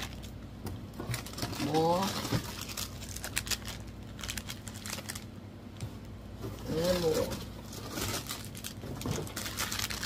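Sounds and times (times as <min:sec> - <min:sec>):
plastic wrapping crinkling: 0:00.0 - 0:05.4, 0:06.6 - 0:10.0.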